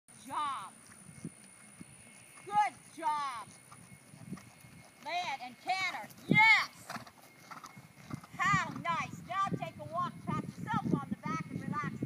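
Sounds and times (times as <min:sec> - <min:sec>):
horse hoofbeats on grass: 0:00.3 - 0:12.0.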